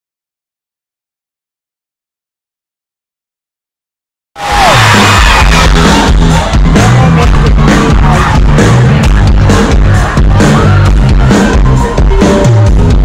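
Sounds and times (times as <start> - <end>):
crowd voices: 4.4 - 13.0
live pop concert music: 4.4 - 13.0.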